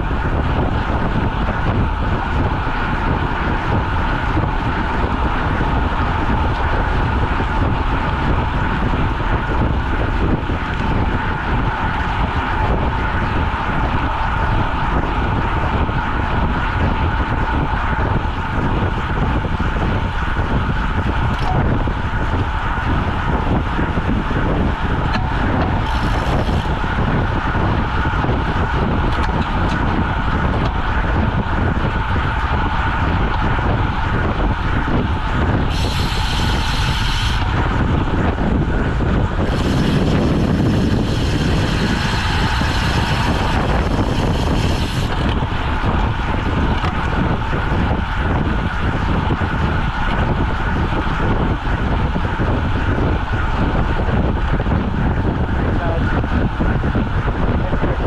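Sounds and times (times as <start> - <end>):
wind rushing: 0.0 - 58.0
tyres on asphalt: 0.2 - 57.6.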